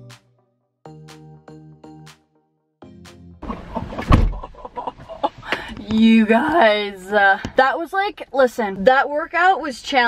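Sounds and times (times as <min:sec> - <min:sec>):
background music: 0:00.0 - 0:03.8
loud thump: 0:03.5 - 0:04.5.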